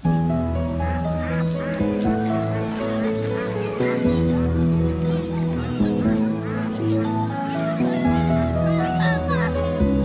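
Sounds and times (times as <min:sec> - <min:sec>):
background music: 0:00.0 - 0:10.0
geese honking: 0:00.0 - 0:10.0.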